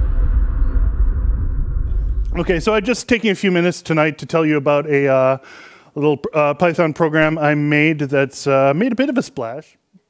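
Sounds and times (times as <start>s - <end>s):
low room rumble: 0.0s - 3.0s.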